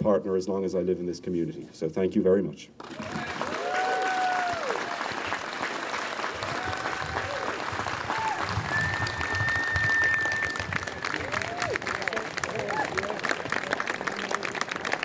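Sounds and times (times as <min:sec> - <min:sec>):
audience applauding: 0:02.8 - 0:15.0.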